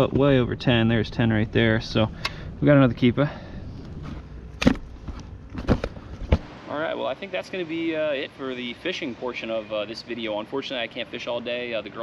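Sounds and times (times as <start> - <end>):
man talking: 0.0 - 3.6, 6.7 - 12.0.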